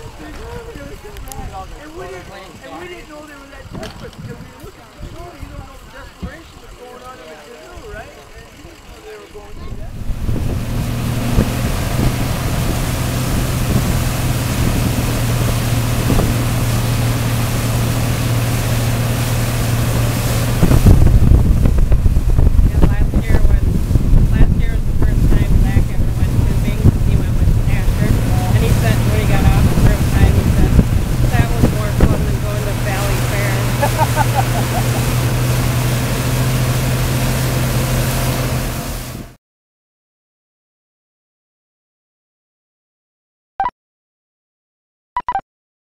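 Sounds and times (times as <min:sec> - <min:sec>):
outboard motors running: 0:00.0 - 0:39.4
rush of boat wake: 0:00.0 - 0:39.4
wind buffeting microphone: 0:03.6 - 0:06.6, 0:09.6 - 0:36.8.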